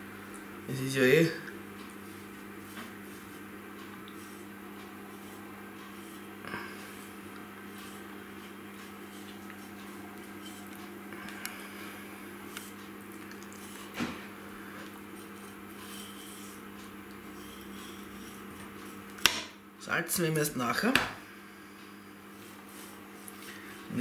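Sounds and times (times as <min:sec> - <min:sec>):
steady low hum: 0:00.0 - 0:24.0.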